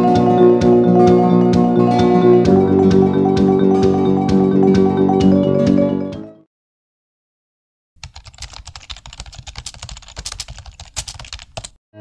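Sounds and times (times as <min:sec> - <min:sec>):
rapid keyboard typing: 0:08.0 - 0:11.8.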